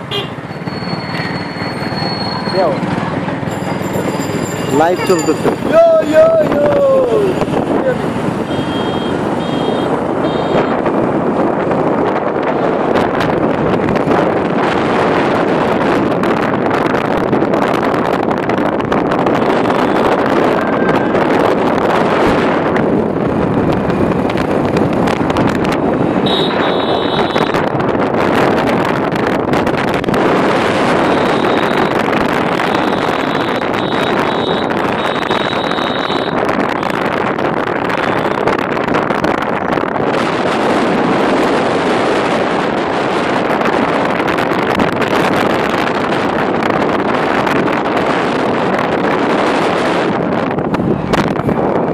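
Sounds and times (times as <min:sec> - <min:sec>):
motorcycle engine: 0:00.0 - 0:51.9
wind buffeting microphone: 0:02.6 - 0:51.9
thin high beeping tone: 0:03.5 - 0:05.6.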